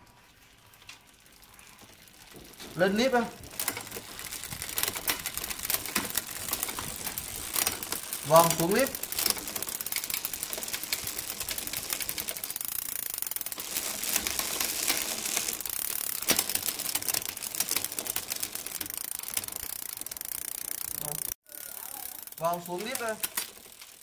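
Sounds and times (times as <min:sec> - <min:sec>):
bicycle chain clicking: 0:00.1 - 0:24.0.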